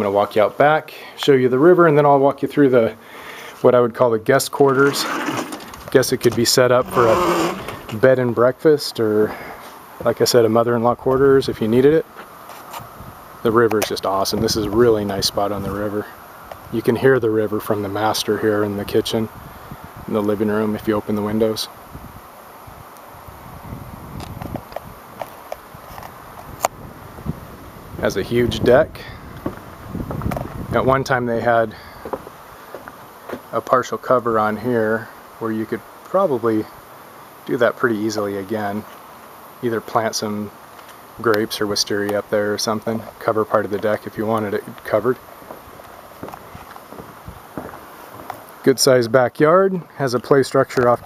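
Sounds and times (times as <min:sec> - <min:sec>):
river rushing: 0:04.5 - 0:08.1
light footsteps: 0:32.0 - 0:33.6, 0:43.0 - 0:48.6.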